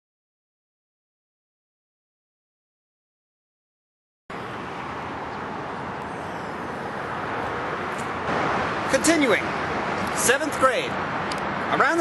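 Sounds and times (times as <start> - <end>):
highway traffic hiss: 4.3 - 12.0.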